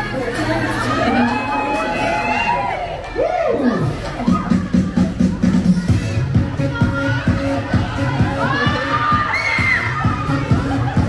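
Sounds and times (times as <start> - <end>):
children shouting and cheering: 0.0 - 11.0
pop dance music: 0.0 - 11.0.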